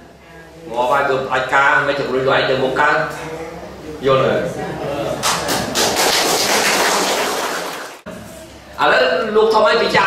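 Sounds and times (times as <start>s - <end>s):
group applauding: 5.2s - 8.0s.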